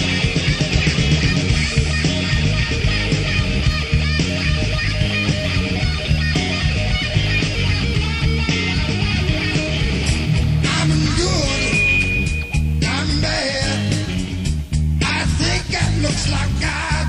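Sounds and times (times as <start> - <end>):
rock band with guitar: 0.0 - 17.0.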